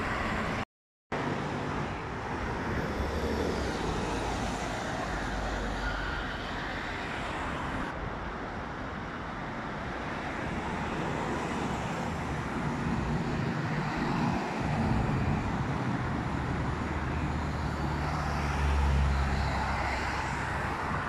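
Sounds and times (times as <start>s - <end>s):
cars and bus passing: 0.0s - 21.0s.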